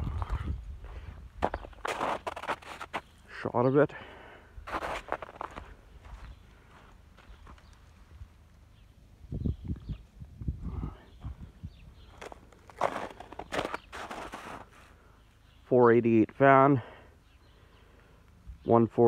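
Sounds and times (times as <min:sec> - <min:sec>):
footsteps crunching in snow: 0:00.0 - 0:03.2, 0:04.6 - 0:08.1, 0:12.0 - 0:14.9.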